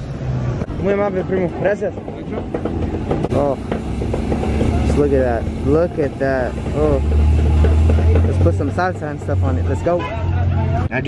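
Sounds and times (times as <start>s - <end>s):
low engine rumble: 0.6s - 10.9s
voices talking: 0.7s - 11.0s.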